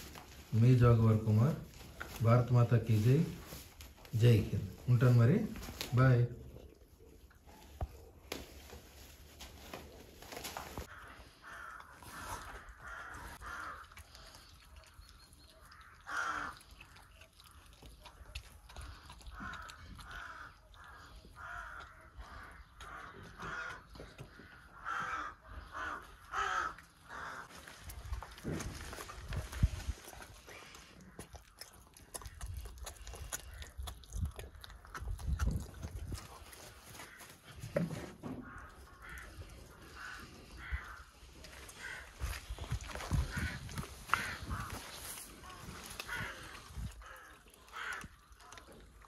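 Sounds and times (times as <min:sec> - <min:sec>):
animal harsh calls: 0:15.5 - 0:27.9.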